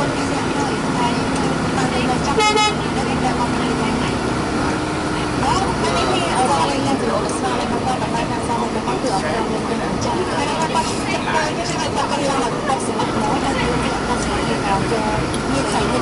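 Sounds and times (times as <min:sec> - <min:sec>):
road noise: 0:00.0 - 0:16.0
vehicle engine humming: 0:00.0 - 0:16.0
voices talking: 0:00.0 - 0:16.0.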